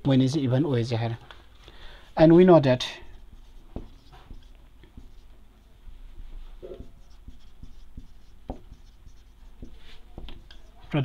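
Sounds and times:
marker pen writing on whiteboard: 2.2s - 11.0s.

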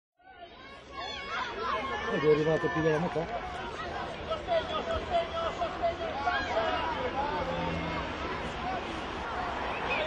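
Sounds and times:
crowd chatter: 0.2s - 10.0s.

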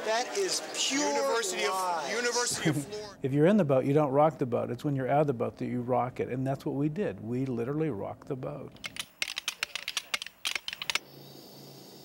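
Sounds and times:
rapid sharp clicks: 8.8s - 11.0s.

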